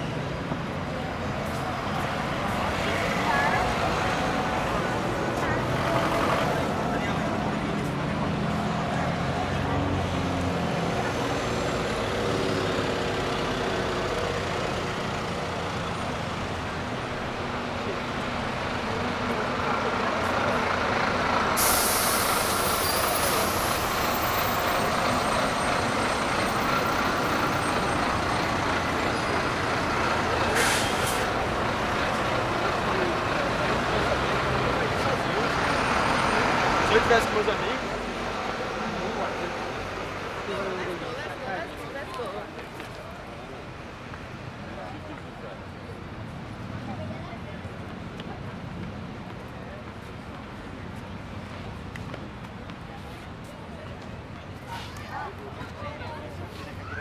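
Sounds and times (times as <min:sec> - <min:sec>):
heavy street traffic: 0:00.0 - 0:57.0
large vehicle engine running: 0:00.4 - 0:40.5
loud air hiss: 0:21.6 - 0:23.8.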